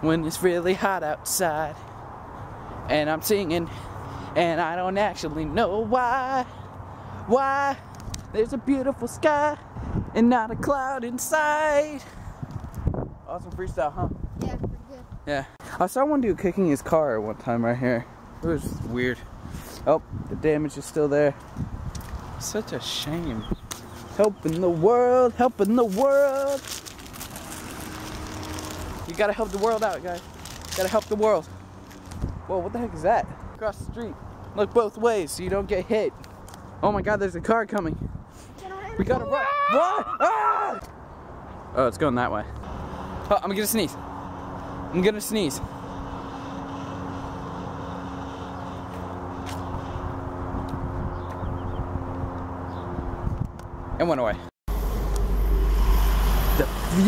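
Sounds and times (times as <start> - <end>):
street traffic: 0.0 - 57.0
vehicle engine humming: 22.3 - 34.8, 40.8 - 54.1, 54.7 - 57.0.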